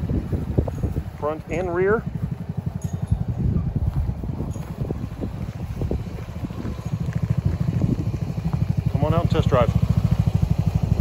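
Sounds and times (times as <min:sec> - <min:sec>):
go-kart engine idling: 0:00.1 - 0:11.0.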